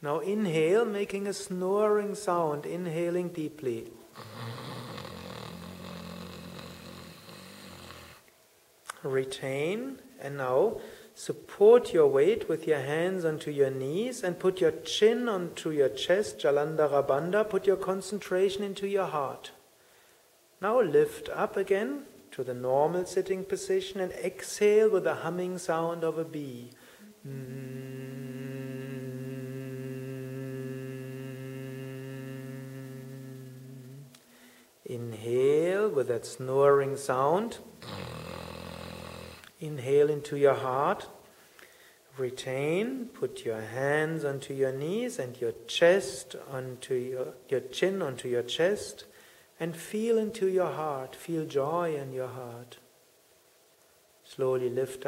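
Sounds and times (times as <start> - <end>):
deep snoring inhalation: 4.1 - 8.2, 37.8 - 39.5
person humming: 4.1 - 8.2, 27.0 - 34.3.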